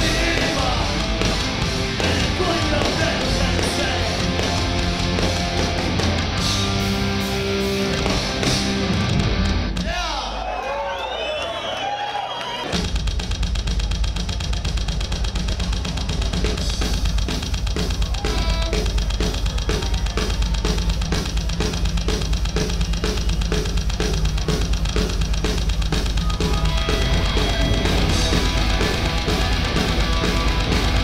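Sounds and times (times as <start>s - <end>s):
punk rock band playing: 0.0s - 10.0s, 12.7s - 31.0s
drum kit kick snare and cymbals: 0.0s - 10.2s, 12.7s - 31.0s.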